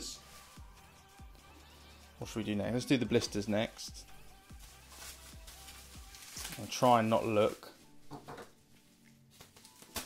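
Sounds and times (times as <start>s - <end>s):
bubble wrap crinkling: 0.0s - 1.8s, 4.0s - 10.0s
faint background music: 0.0s - 10.0s.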